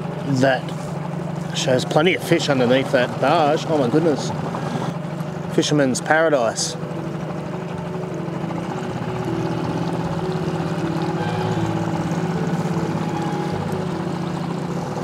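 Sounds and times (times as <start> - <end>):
outboard motor running: 0.0 - 15.0
water rushing along hull: 0.0 - 15.0.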